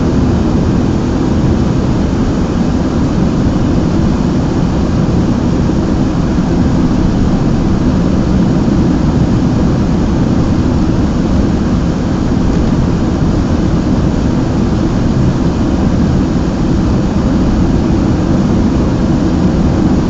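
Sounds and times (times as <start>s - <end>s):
car cabin road and engine rumble: 0.0s - 20.0s.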